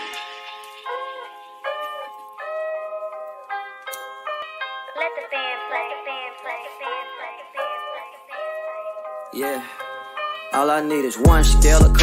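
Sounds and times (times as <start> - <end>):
melody of held notes: 0.0 - 12.0
person rapping: 4.9 - 8.7, 9.3 - 9.8, 10.5 - 12.0.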